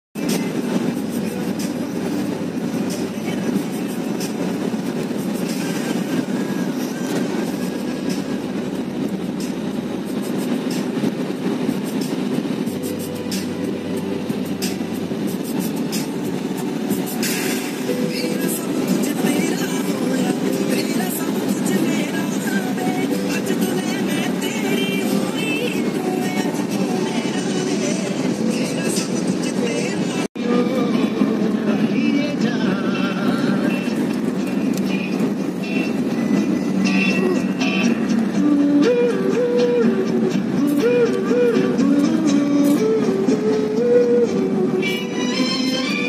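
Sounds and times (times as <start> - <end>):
car cabin road rumble: 0.2 - 46.0.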